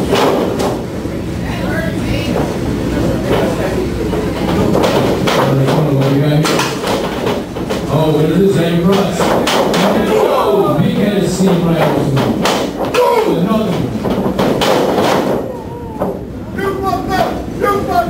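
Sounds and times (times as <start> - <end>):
spectators shouting: 9.8 - 10.8
wrestlers thudding on ring mat: 11.4 - 16.2.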